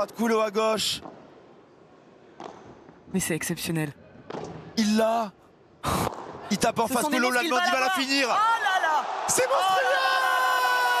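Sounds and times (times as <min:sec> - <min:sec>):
faint arena background: 0:00.0 - 0:11.0.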